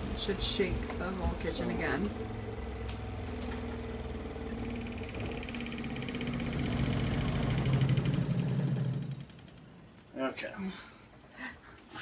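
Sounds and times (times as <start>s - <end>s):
washing machine motor humming: 0.0s - 9.4s
buzzing rattle of machine: 2.3s - 8.1s.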